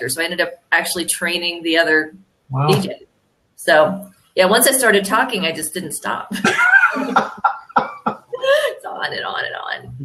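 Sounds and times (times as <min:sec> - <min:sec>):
woman laughing: 0:06.3 - 0:08.9
man laughing heartily: 0:06.4 - 0:08.7.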